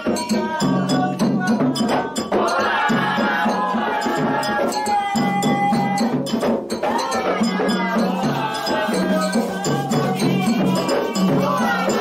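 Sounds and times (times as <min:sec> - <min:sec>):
hand drums beating: 0:00.0 - 0:12.0
sung chant: 0:00.0 - 0:12.0.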